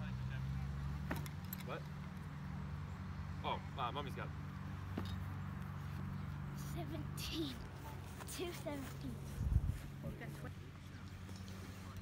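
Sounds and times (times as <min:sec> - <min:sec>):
low engine hum: 0:00.0 - 0:12.0.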